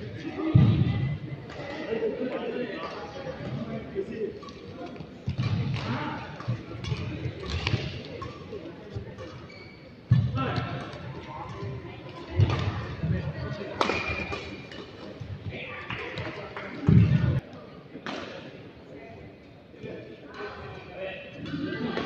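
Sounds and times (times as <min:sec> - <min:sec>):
shuttlecock hits and thuds: 0:04.4 - 0:08.4, 0:13.8 - 0:15.2.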